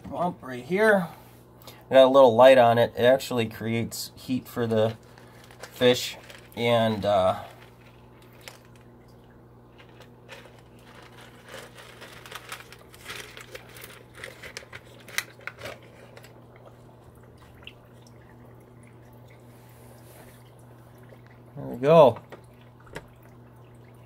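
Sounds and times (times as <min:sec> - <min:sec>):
steady low hum: 0:00.0 - 0:24.0
light water sounds: 0:04.2 - 0:24.0
plastic rustling: 0:04.6 - 0:09.0, 0:09.7 - 0:16.5.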